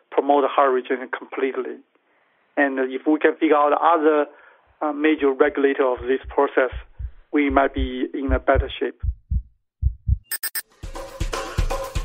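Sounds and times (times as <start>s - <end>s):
heartbeat thumps: 5.1s - 10.3s
music with drum beat: 5.2s - 12.0s.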